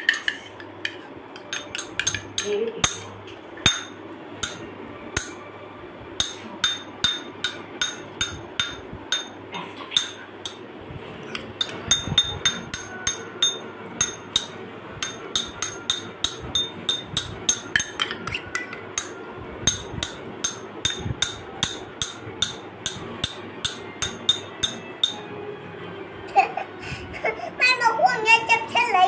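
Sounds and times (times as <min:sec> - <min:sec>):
spoon tapping metal cup: 0:00.0 - 0:03.1, 0:11.3 - 0:25.2.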